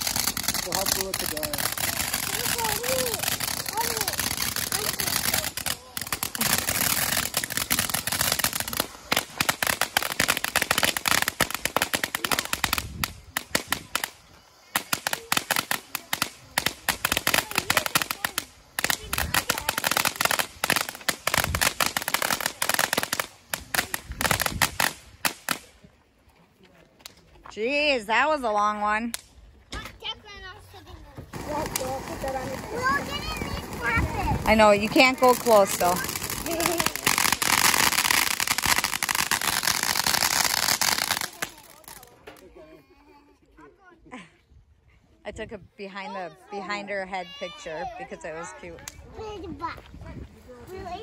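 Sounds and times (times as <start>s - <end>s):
firework fountain hissing: 0.0s - 25.7s, 31.1s - 42.2s
sharp popping crackles: 0.0s - 25.8s, 31.3s - 42.2s.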